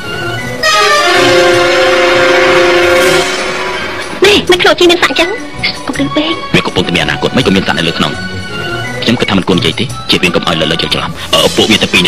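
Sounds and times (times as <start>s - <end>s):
loud held musical chord: 0.1s - 4.5s.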